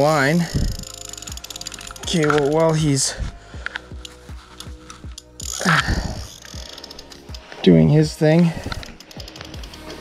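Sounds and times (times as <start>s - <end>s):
fishing reel drag clicking: 0.0s - 10.0s.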